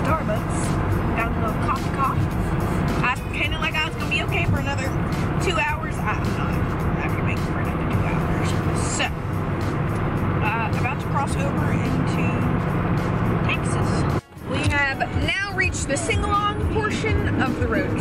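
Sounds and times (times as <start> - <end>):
car road noise and engine hum: 0.0 - 18.0
music playing: 0.0 - 18.0
woman singing along: 14.5 - 18.0.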